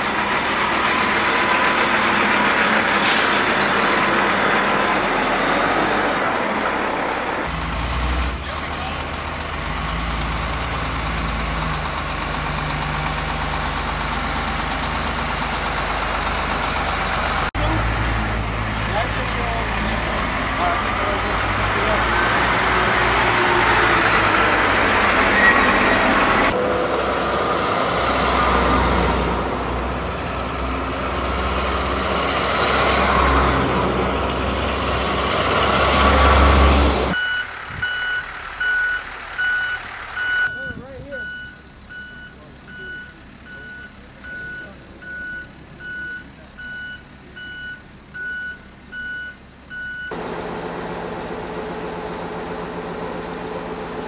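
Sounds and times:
heavy trucks driving past: 0.0s - 54.0s
truck reversing alarm beeps: 37.0s - 50.2s.

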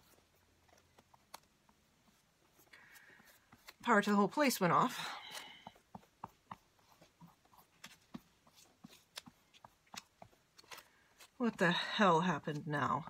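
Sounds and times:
stiff paper crackling: 0.0s - 11.5s.

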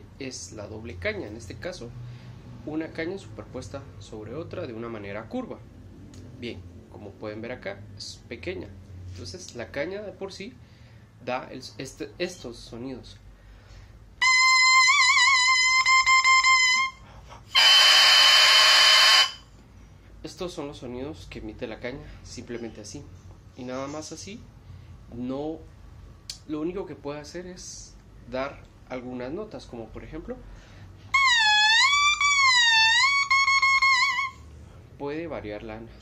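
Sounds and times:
oboe reed note: 14.2s - 19.4s, 31.1s - 34.4s.

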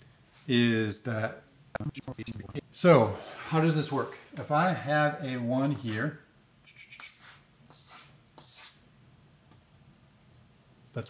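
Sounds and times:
marker scratching on blackboard: 6.6s - 8.8s.

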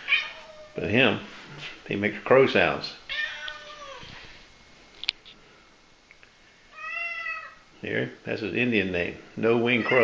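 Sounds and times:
cat meowing: 0.0s - 0.8s, 3.1s - 4.1s, 6.7s - 7.6s, 9.7s - 10.0s.

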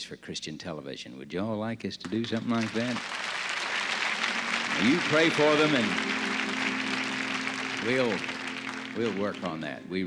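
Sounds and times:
audience applauding: 2.1s - 9.8s
man speaking: 9.0s - 10.0s.

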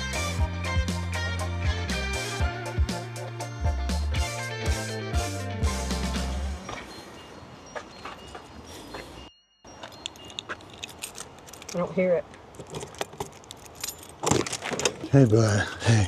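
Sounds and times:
light metallic clinks: 6.6s - 15.6s
keys jangling in a lock: 9.8s - 11.9s, 12.6s - 15.1s.

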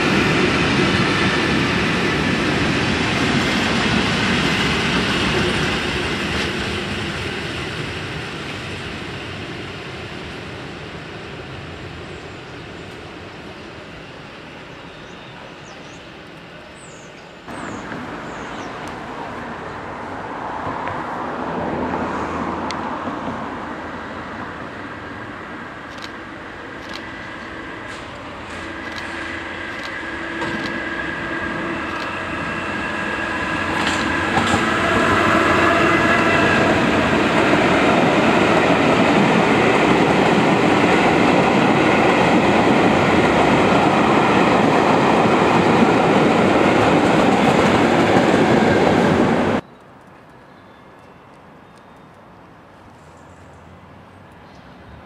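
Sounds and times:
train wheels clattering on rails: 0.0s - 10.4s, 26.8s - 49.6s
distant train hum: 0.0s - 55.0s
scattered clicks: 25.9s - 26.2s, 26.8s - 27.5s, 29.7s - 30.8s, 31.9s - 32.1s.

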